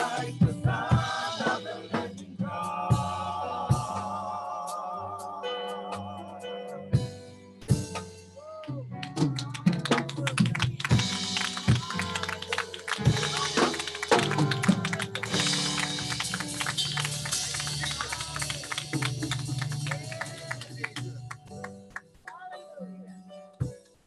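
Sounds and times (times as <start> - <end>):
gospel band playing: 0.0 - 22.7
hands clapping: 8.6 - 22.4
held keyboard chord: 10.7 - 24.0.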